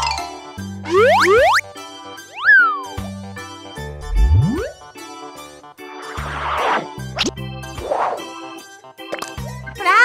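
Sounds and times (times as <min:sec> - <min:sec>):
upbeat children's music: 0:00.0 - 0:10.0
pitch glide rising and falling: 0:00.9 - 0:01.6, 0:02.3 - 0:03.0, 0:04.0 - 0:04.8
rising pitch swoops: 0:00.9 - 0:01.6, 0:02.3 - 0:03.1, 0:04.0 - 0:04.8.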